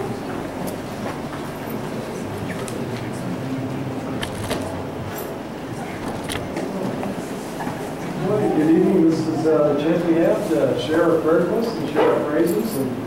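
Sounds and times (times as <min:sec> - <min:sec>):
people shuffling: 0:00.0 - 0:11.8
steady low hum: 0:00.0 - 0:11.9
faint murmur of people: 0:00.0 - 0:13.0.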